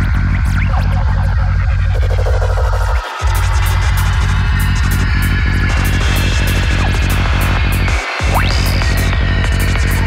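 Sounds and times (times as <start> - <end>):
heavy rolling bassline: 0.0 - 10.0
steady electronic beat: 0.0 - 10.0.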